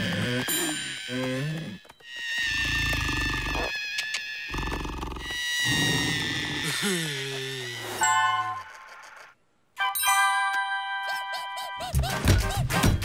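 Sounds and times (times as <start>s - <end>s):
cartoon music: 9.8s - 13.0s.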